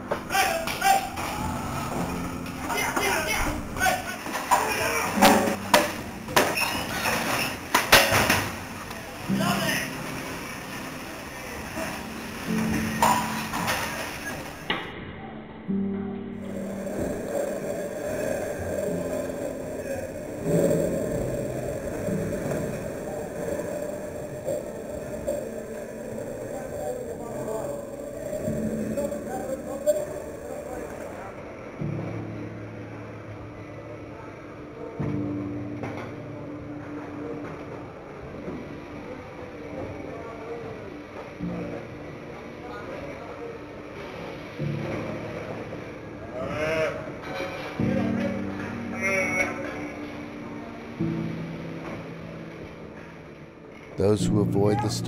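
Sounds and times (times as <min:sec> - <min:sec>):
background music: 0:00.0 - 0:55.0.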